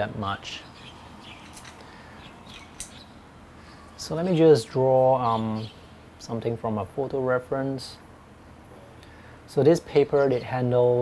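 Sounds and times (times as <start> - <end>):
faint bird chirps: 0.5 - 4.2
sharp click: 2.8 - 3.0.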